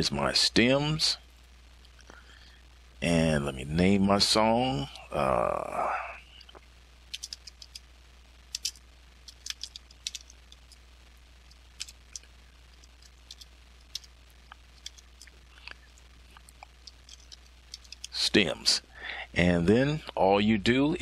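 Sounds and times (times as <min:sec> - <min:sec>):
faint low hum: 0:00.0 - 0:21.0.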